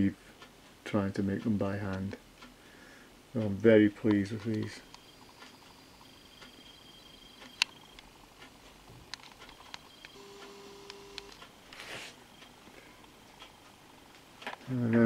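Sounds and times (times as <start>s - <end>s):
small clicks: 7.4s - 11.6s.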